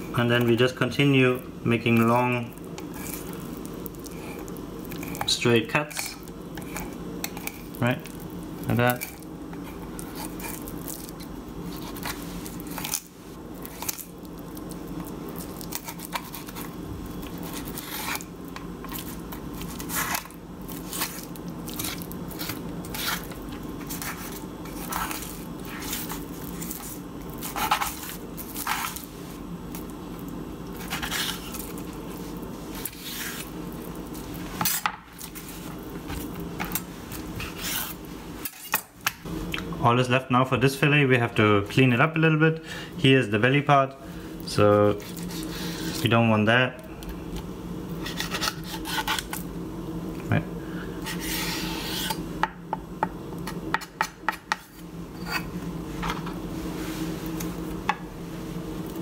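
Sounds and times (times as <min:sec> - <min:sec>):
knife scraping over fish bones: 0:02.8 - 0:05.3, 0:08.9 - 0:14.1, 0:15.6 - 0:29.1, 0:30.8 - 0:31.8, 0:37.4 - 0:38.8, 0:45.0 - 0:46.0, 0:48.0 - 0:49.4, 0:51.0 - 0:52.2.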